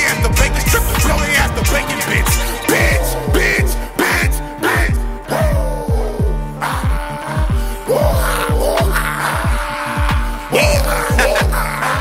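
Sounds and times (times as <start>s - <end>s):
gliding high melody line: 0.0s - 4.8s
deep bass notes dropping in pitch: 0.0s - 7.1s
hip-hop beat: 0.0s - 12.0s.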